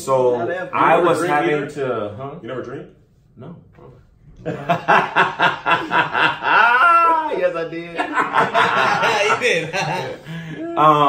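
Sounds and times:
men laughing hard: 4.4s - 10.7s.

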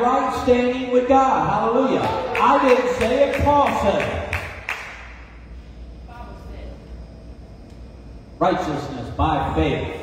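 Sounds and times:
man's voice echoing: 0.0s - 4.4s
low steady hum: 0.0s - 10.0s.

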